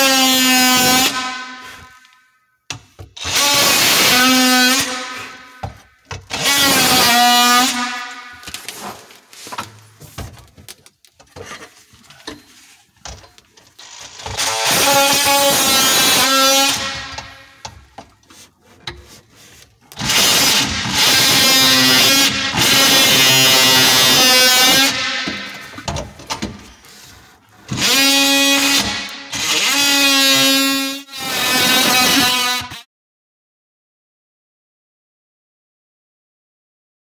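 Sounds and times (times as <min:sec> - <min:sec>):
power tool buzzing: 0:27.7 - 0:32.8.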